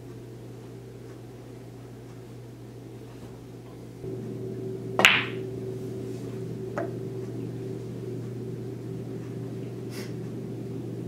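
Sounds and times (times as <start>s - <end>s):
pool balls colliding: 4.0s - 8.2s.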